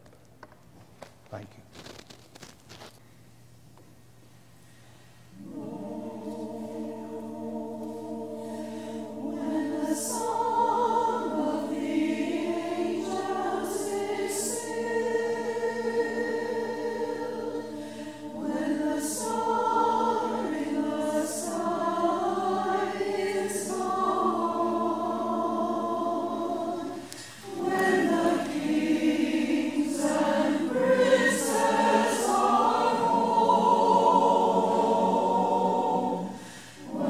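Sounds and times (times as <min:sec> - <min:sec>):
choir singing: 0:05.3 - 0:37.0.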